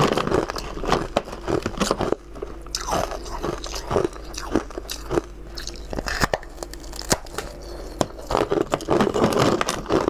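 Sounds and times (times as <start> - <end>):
person chewing crunchy food: 0.0 - 10.0.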